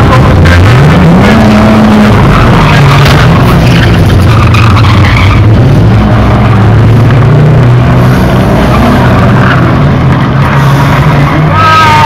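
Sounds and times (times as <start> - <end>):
engine revving up: 0.0 - 12.0
racing car engines running: 0.0 - 12.0.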